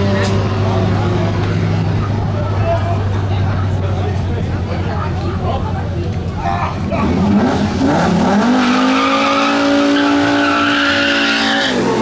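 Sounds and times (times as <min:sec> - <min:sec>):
people talking: 0:00.0 - 0:07.6
car engine idling: 0:00.0 - 0:07.9.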